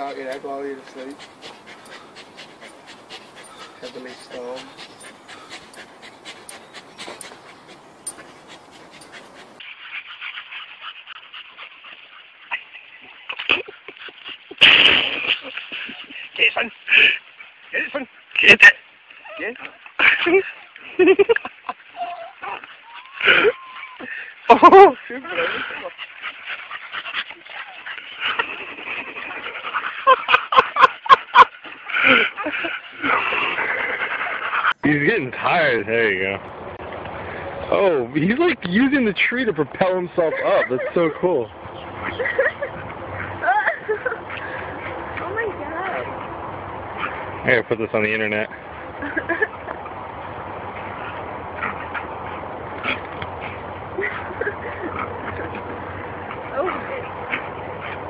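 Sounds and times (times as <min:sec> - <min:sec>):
dogs breathing hard: 0:00.0 - 0:14.6, 0:21.8 - 0:58.0
person laughing: 0:24.5 - 0:25.7.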